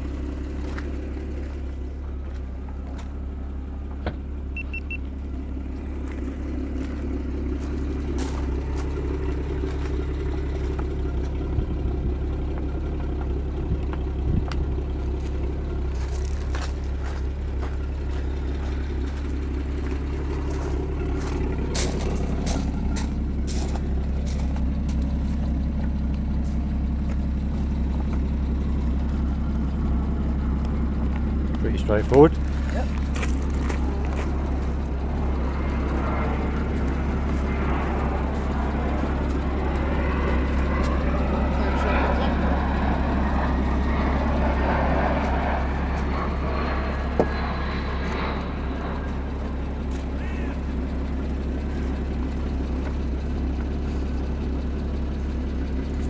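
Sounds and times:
car engine idling: 0.0 - 56.0.

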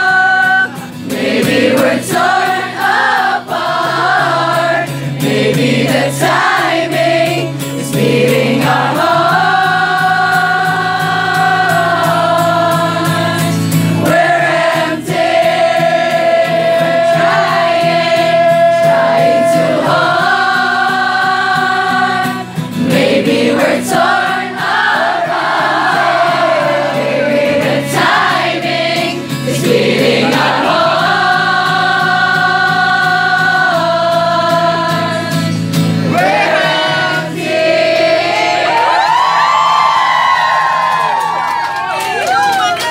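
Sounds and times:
male singer: 0.0 - 2.1
crowd singing along: 0.0 - 41.1
crowd whooping: 15.7 - 22.0, 36.1 - 37.2, 38.1 - 42.9.

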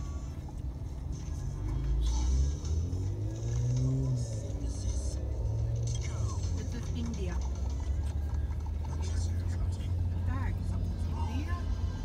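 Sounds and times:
background music: 0.0 - 12.0
car road and engine rumble: 0.0 - 12.0.

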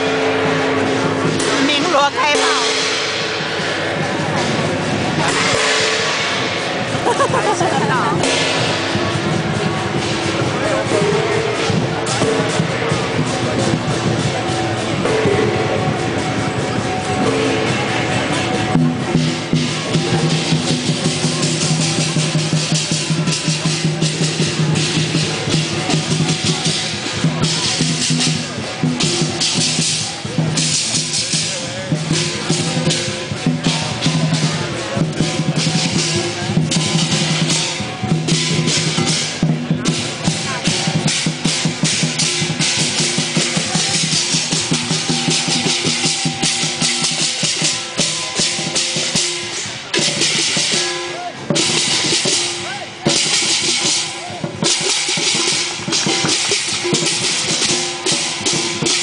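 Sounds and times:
crashing cymbals: 0.0 - 59.0
parade drumming: 0.0 - 59.0.

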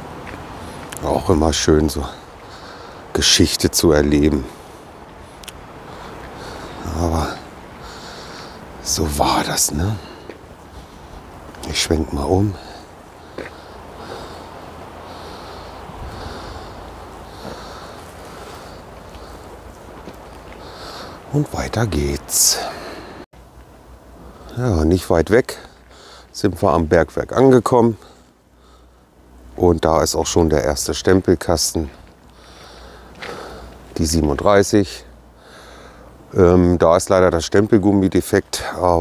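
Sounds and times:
person breathing while walking: 0.2 - 1.0, 2.2 - 3.1, 4.5 - 8.8, 9.9 - 11.6, 12.5 - 21.3, 22.5 - 23.3, 25.6 - 26.4, 28.0 - 29.5, 31.9 - 34.0, 35.1 - 36.3
person exhaling: 4.5 - 8.6, 12.5 - 19.6, 20.5 - 21.3, 22.5 - 23.2
wind rumble on microphone: 13.8 - 21.3.

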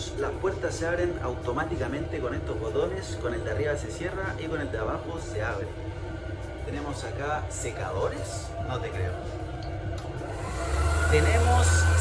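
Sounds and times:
electric hand dryer humming: 10.1 - 12.0.

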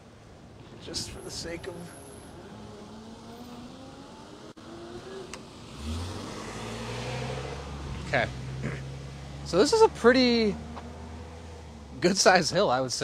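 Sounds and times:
car engine hum: 0.0 - 12.7.

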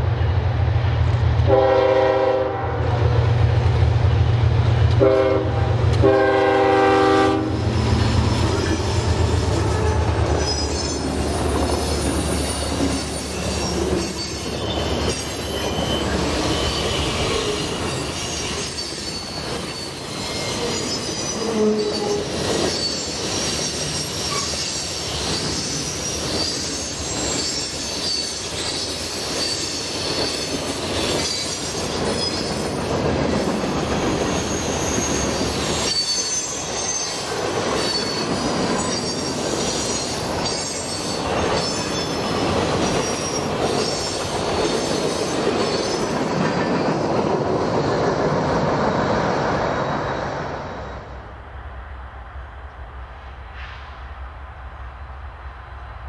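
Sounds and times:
freight train wheels rumbling: 0.0 - 56.0
high wheel squeals: 7.6 - 33.0, 33.7 - 47.0.

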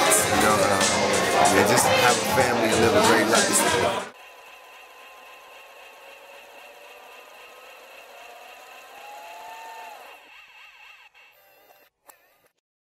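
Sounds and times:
electronic whirring with thin tones: 4.1 - 12.6.

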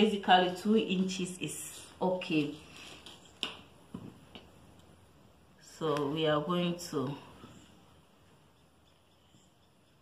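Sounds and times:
faint sharp clicks and taps: 2.9 - 4.9.

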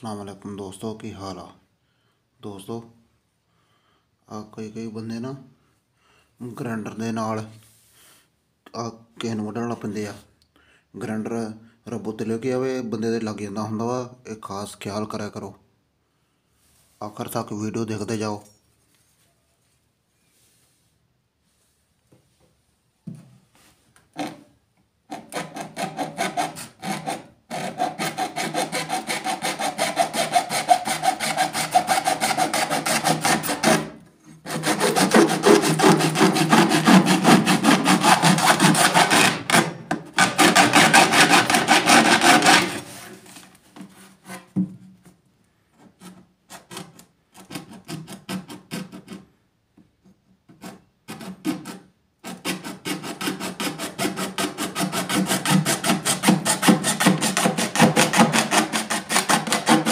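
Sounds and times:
hacksaw blade sawing plastic: 24.2 - 24.5, 25.1 - 43.4, 45.8 - 49.3, 50.5 - 59.9.

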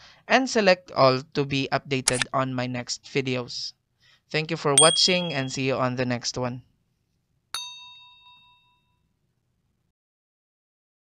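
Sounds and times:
bright metallic bell ding: 4.8 - 5.8, 7.6 - 8.8.

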